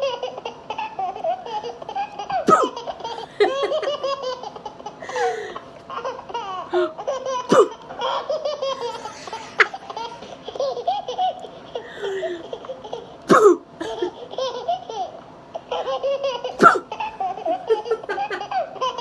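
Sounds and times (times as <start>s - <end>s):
woman laughing hard: 2.3s - 5.7s, 6.7s - 10.4s, 11.8s - 12.6s, 13.8s - 14.2s, 16.5s - 19.0s.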